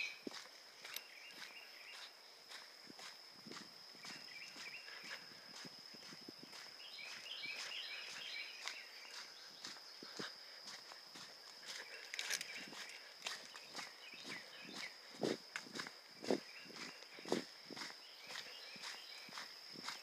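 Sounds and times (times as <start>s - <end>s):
footsteps on dirt trail: 0.0s - 20.0s.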